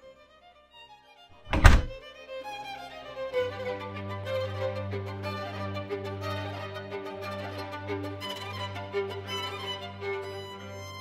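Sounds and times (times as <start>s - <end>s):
heavy deep thunk: 1.5s - 2.0s.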